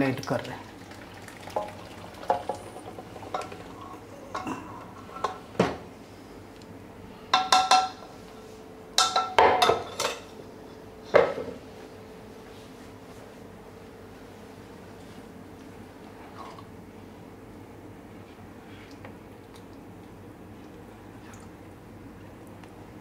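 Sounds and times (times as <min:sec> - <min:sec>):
dal being poured: 0:00.8 - 0:03.8
metal utensils clinking on pots: 0:09.0 - 0:10.2.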